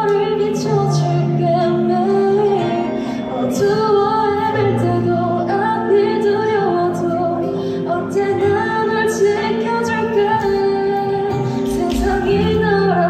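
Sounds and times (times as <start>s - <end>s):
girl singing ballad into microphone: 0.0s - 13.0s.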